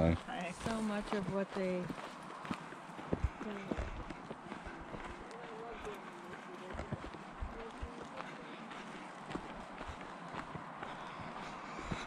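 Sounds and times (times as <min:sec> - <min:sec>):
faint voices talking quietly: 0:00.0 - 0:12.0
footsteps crunching on dirt trail: 0:00.0 - 0:12.0.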